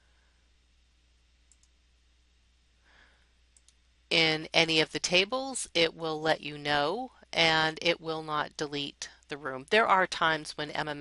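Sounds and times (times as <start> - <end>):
faint computer mouse clicks: 1.4 - 1.8, 3.5 - 3.8.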